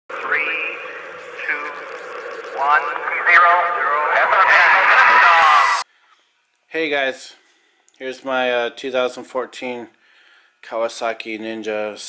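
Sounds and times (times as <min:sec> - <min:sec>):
radio-like voice: 0:00.1 - 0:05.8.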